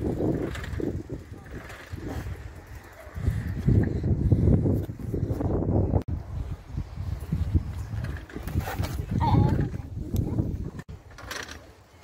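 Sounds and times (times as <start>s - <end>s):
wind buffeting microphone: 0.0s - 11.1s.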